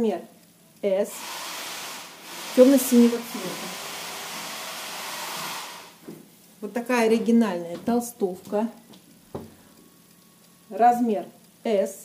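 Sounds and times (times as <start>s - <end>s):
steady hiss: 0.0s - 7.3s.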